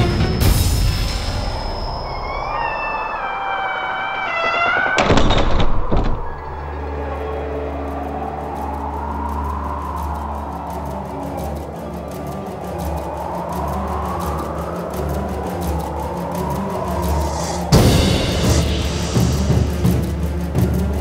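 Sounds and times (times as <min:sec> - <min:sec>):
low drone: 0:00.0 - 0:21.0
high rising and falling tone: 0:01.4 - 0:05.4, 0:06.6 - 0:20.3.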